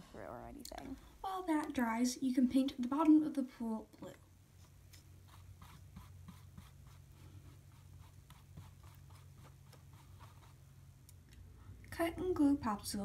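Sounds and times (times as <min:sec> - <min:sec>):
paintbrush strokes on plastic: 0:04.5 - 0:10.8.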